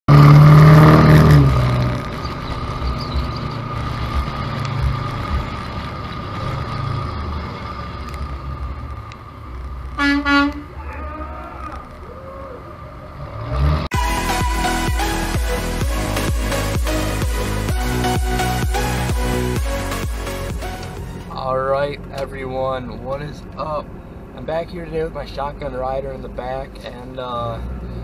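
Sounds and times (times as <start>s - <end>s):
road and wind noise: 0.1s - 14.4s, 15.0s - 28.0s
vehicle horn: 10.0s - 10.8s.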